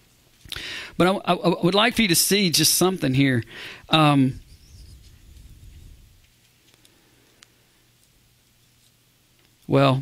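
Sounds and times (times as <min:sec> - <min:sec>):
steady faint hum: 0:00.0 - 0:10.0.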